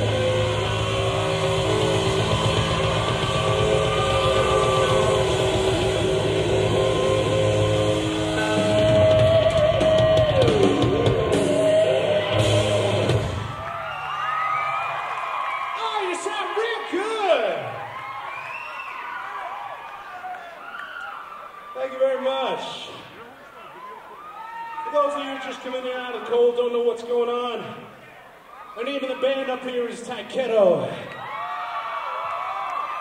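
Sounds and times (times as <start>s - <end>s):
crowd whooping and shouting: 0.0s - 26.4s, 27.9s - 29.0s, 30.9s - 33.0s
live hard rock band: 8.2s - 13.6s.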